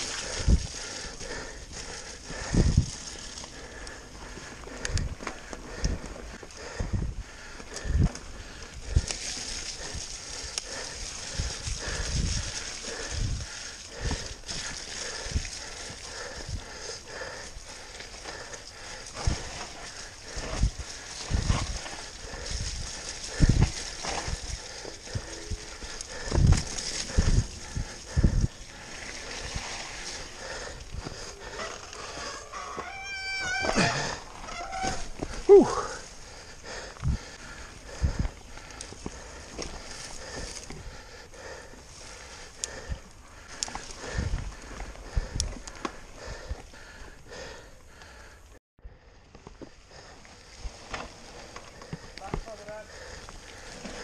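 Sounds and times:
wind noise on microphone: 0.0s - 0.9s, 2.2s - 3.2s, 4.7s - 16.7s, 19.1s - 31.4s, 36.8s - 40.9s, 42.8s - 46.7s
bike chain and frame rattling: 0.0s - 40.9s
bike tyres rolling on mud: 0.0s - 54.0s.

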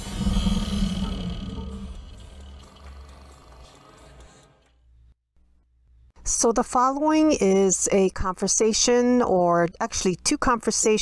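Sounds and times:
deep cinematic hit: 0.0s - 3.1s.

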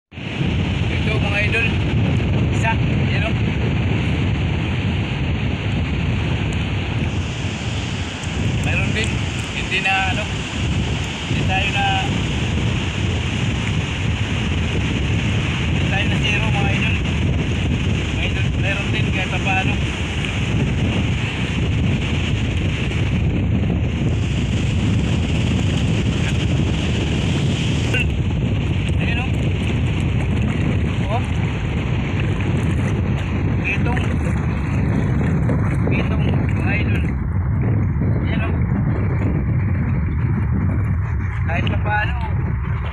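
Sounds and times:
wind across microphone: 0.0s - 42.9s
choppy shallow sea water: 0.1s - 42.9s.

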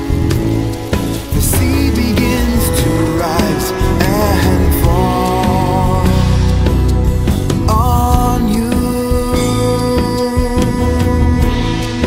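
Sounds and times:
band music with drums and bass: 0.0s - 12.0s.

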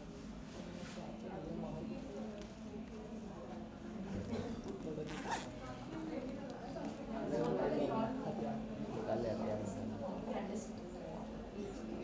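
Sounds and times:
faint voices talking: 0.3s - 12.0s.

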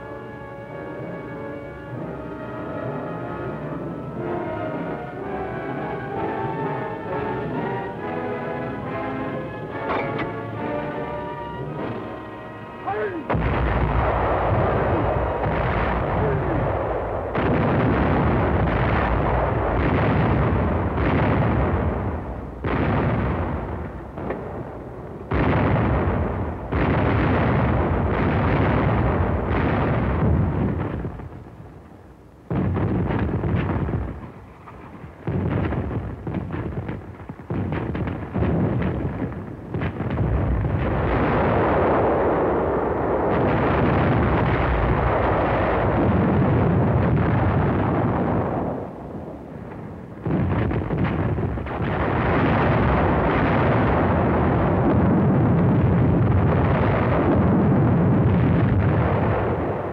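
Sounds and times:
artillery firing with rumble: 5.5s - 11.0s, 11.6s - 12.3s, 12.9s - 31.8s, 32.5s - 59.9s.

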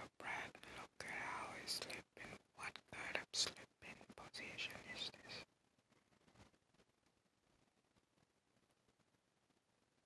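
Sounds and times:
person whispering: 0.0s - 5.5s.

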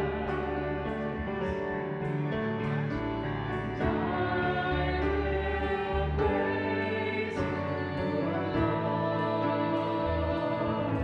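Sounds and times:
choir singing a hymn: 0.0s - 11.0s
instrumental accompaniment: 0.0s - 11.0s.

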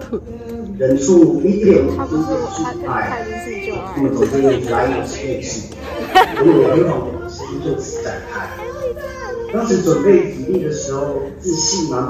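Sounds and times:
young people chattering: 0.0s - 12.0s.

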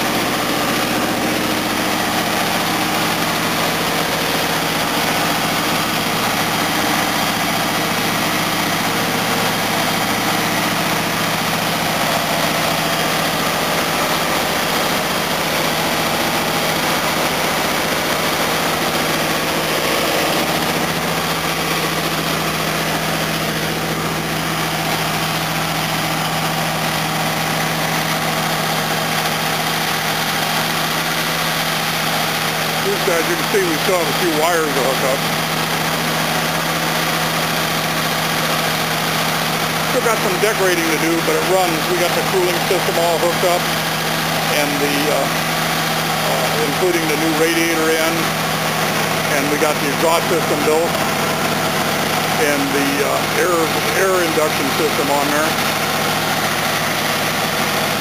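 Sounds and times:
car engine idling: 0.0s - 58.0s.

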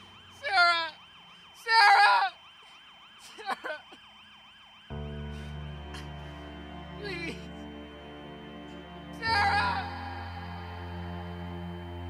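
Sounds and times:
distant siren yelping: 0.0s - 12.0s
person crying out and sobbing: 1.7s - 2.4s, 3.3s - 3.9s, 7.0s - 7.6s, 9.2s - 11.0s
soft sustained music: 4.9s - 12.0s.

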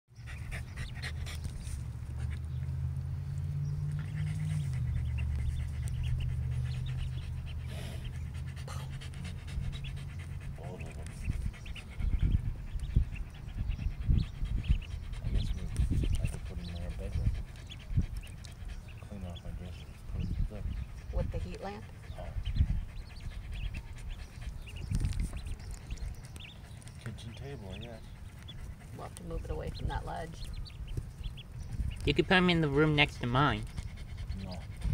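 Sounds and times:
ducklings chirping and clicking: 0.2s - 34.9s
low thumps and rumbles: 8.6s - 18.7s, 28.2s - 32.2s, 33.6s - 34.9s.

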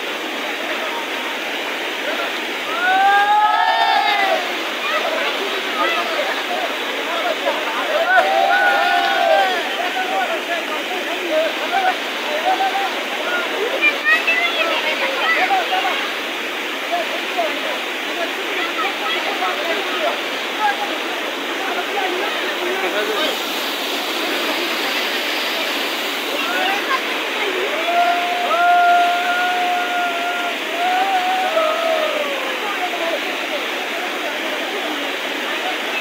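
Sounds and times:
water rushing over rocks: 0.0s - 36.0s
long held shout: 2.6s - 5.0s, 7.8s - 10.4s, 27.5s - 32.7s
people calling out: 2.7s - 6.4s, 7.2s - 10.4s, 26.4s - 32.6s.

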